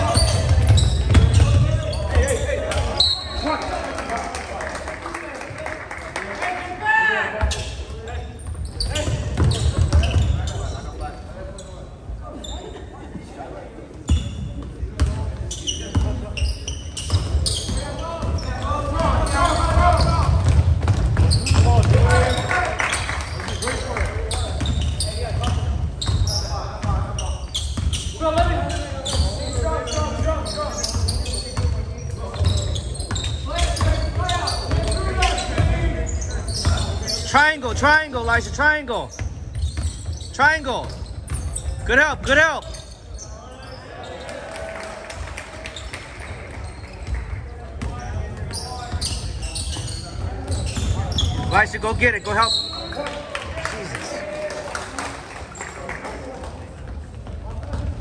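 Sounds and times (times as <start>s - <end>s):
basketball bouncing on wooden floor: 0.3s - 1.8s, 8.5s - 10.4s, 19.9s - 22.3s.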